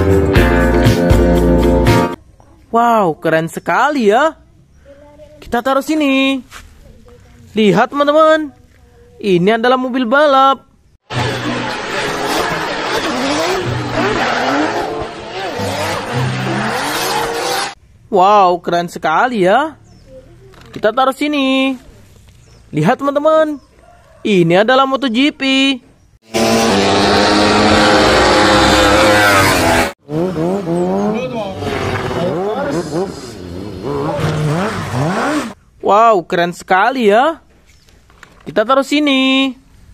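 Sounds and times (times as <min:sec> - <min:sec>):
car engine revving: 0:11.0 - 0:17.8, 0:26.3 - 0:35.6
tyres squealing: 0:11.1 - 0:17.8.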